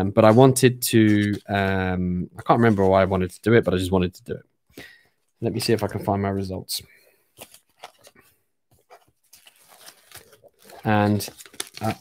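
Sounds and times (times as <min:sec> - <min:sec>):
papers rustling and knocking: 0:07.3 - 0:12.0.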